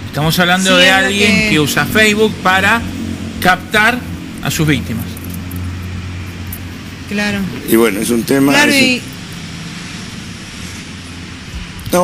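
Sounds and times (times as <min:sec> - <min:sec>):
low rumble of street traffic: 0:00.0 - 0:12.0.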